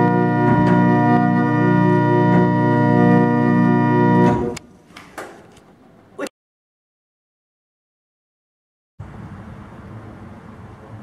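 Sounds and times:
pipe organ chord: 0.0s - 4.6s.

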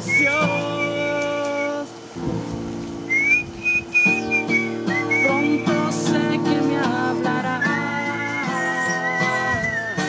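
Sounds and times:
whistled melody: 0.0s - 1.9s, 3.0s - 6.1s, 7.4s - 10.0s
acoustic guitar chords: 0.0s - 10.0s.

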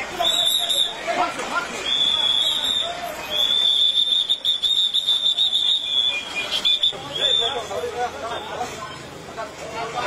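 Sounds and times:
police whistle trilling: 0.2s - 1.0s, 1.8s - 7.7s.

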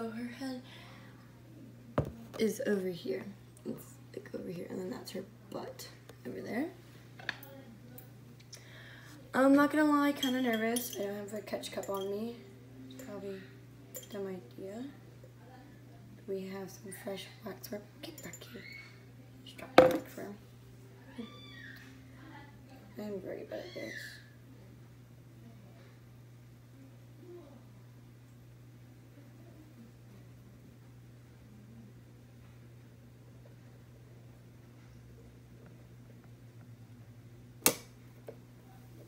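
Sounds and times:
low steady hum: 0.0s - 39.0s.

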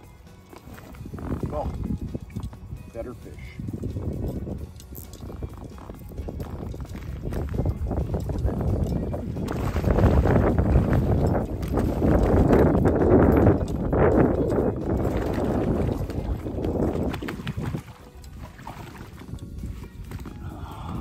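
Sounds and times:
water splashing and churning: 0.0s - 21.0s.

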